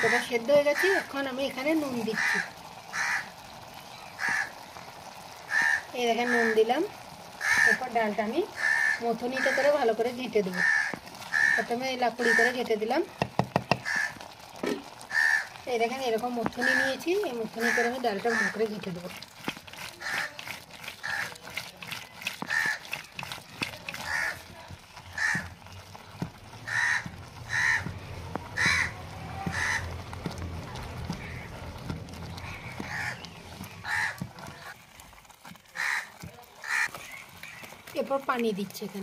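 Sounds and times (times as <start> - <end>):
crows cawing: 0.0 - 1.1, 2.1 - 3.4, 4.1 - 4.6, 5.4 - 6.6, 7.3 - 7.9, 8.5 - 9.8, 10.5 - 12.6, 13.7 - 14.3, 15.0 - 15.6, 16.6 - 18.6, 19.9 - 21.4, 22.4 - 25.7, 26.6 - 30.4, 31.0 - 34.7, 35.7 - 37.8
lentils sloshing: 0.0 - 39.0
wooden churner knocking on pot: 13.1 - 15.0, 16.3 - 34.8.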